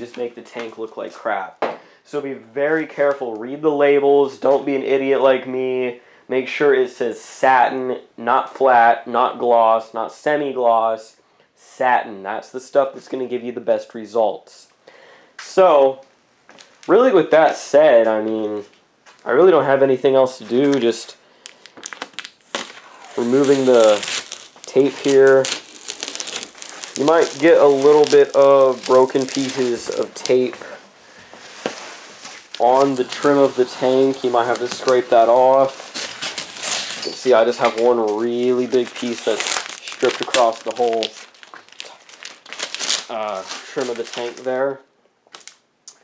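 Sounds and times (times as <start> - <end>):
plastic sheeting crinkling: 20.4 - 44.7
tape and plastic peeling: 20.6 - 30.8, 31.4 - 44.5.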